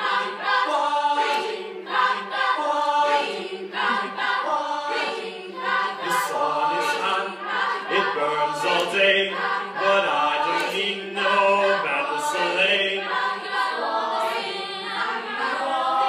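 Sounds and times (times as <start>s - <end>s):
young voices singing a cappella: 0.0s - 16.0s.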